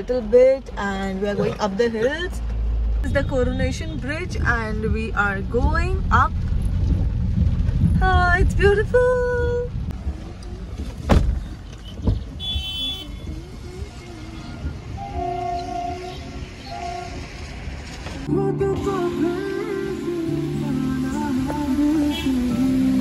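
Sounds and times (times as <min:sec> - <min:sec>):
car driving rumble inside cabin: 0:00.0 - 0:23.0
background music: 0:18.3 - 0:23.0.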